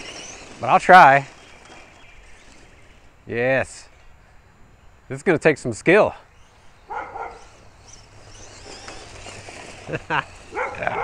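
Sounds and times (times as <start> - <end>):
electric motor whining: 0.0 - 3.2, 6.3 - 11.0
tyres running over grass: 0.0 - 11.0.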